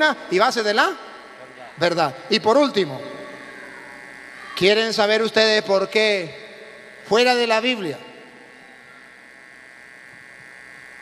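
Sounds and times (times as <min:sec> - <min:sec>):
electrical hum and buzz: 0:00.0 - 0:11.0.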